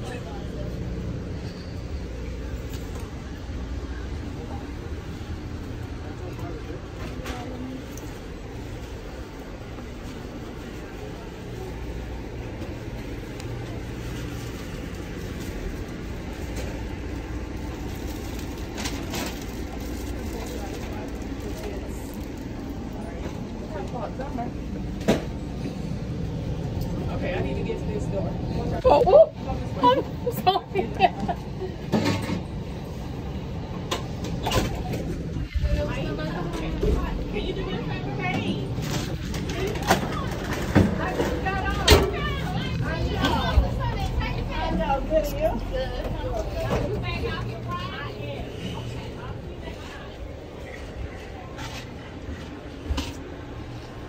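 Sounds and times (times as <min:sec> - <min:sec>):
indistinct chatter of people: 0:00.0 - 0:54.0
passenger train low rumble: 0:00.0 - 0:54.0.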